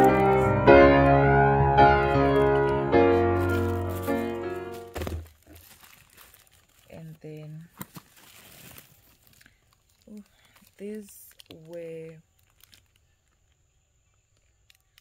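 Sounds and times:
plastic bags crinkling and rustling: 0.0 - 0.5, 2.3 - 15.0
piano music: 0.0 - 5.1.

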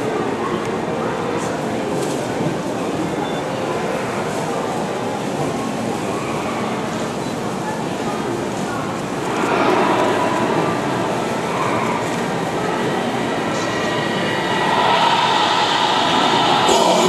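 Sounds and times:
loud rushing noise in hall: 0.0 - 17.0
dance music: 15.8 - 17.0.

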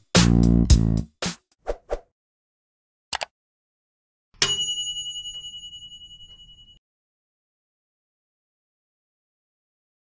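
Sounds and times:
notification bell ding: 4.4 - 6.8.

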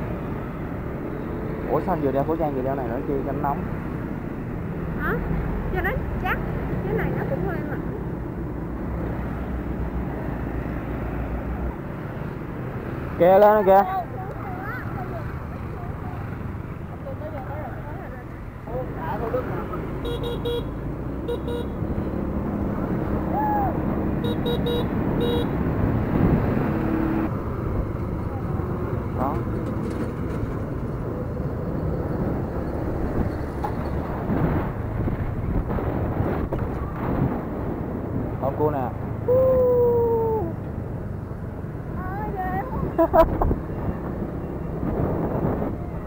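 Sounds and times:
motor scooter engine and road rumble: 0.0 - 46.0
vehicle horn: 20.0 - 21.8, 24.2 - 25.5.

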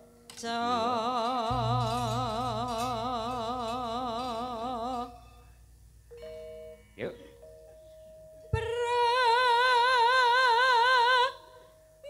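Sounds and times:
person singing: 0.4 - 5.2
gamelan metallophone notes: 1.5 - 8.5.

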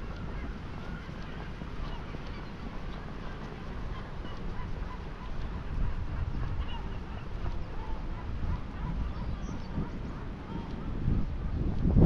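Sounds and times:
birds calling: 0.0 - 11.0
constant low rumble: 0.0 - 12.0
honking bird calls: 3.9 - 11.0.

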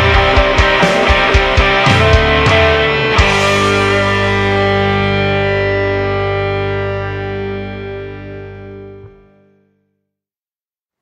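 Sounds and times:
distorted electric guitar chord ringing: 0.0 - 9.7.

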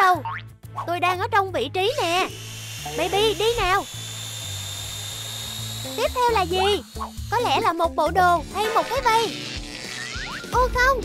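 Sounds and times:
small motor whirring: 1.8 - 10.6.

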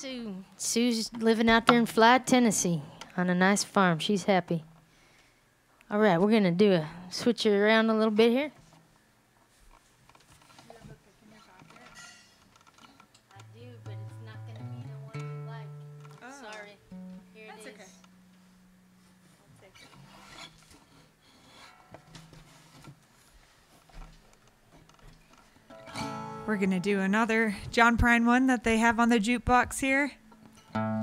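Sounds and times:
acoustic guitar notes: 1.0 - 5.0, 13.3 - 23.0, 25.6 - 31.0
plucked upright bass notes: 13.4 - 16.1.

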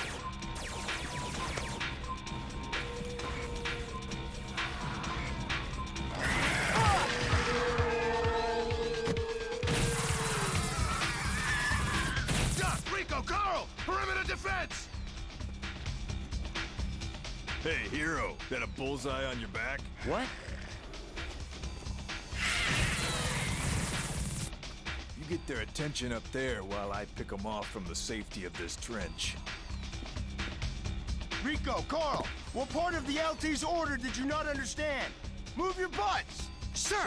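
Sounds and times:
dramatic orchestral score: 0.0 - 14.6
background music: 0.0 - 37.0.

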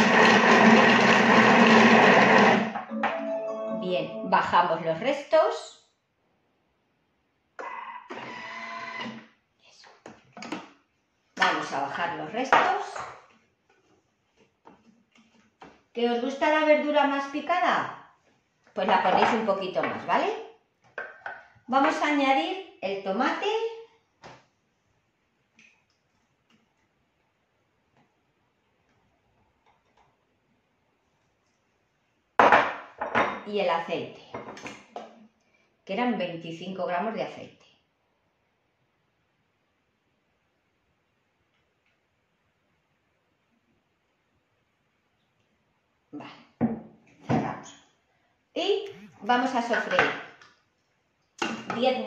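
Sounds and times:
food processor motor whirring: 0.0 - 2.8
kitchenware clattering: 18.8 - 20.1.

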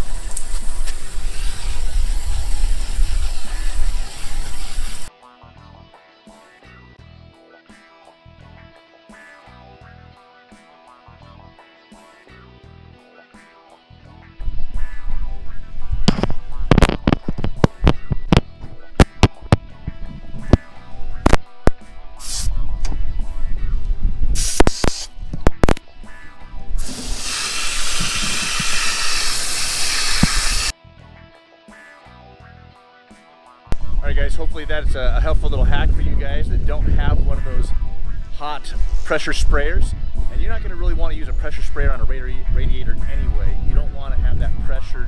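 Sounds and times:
hose spraying water: 0.0 - 5.1, 22.2 - 22.5, 24.4 - 25.1, 26.8 - 30.8
water bursts and splashes: 0.4 - 5.1
background music: 5.0 - 45.0.

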